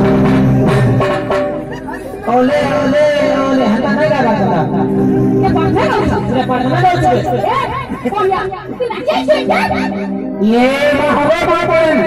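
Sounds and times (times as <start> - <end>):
loud band music: 0.0 - 7.6
voice over loudspeakers: 0.1 - 12.0.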